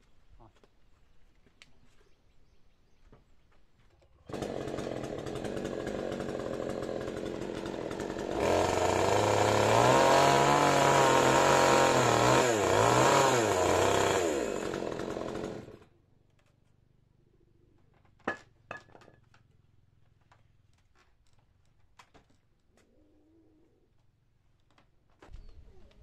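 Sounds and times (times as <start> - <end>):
chainsaw cutting wood: 4.3 - 15.8.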